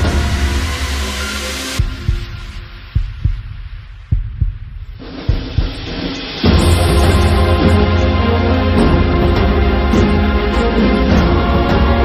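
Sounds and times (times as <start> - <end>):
suspense music: 0.0 - 12.0
deep heartbeat-like double thump: 1.8 - 8.0.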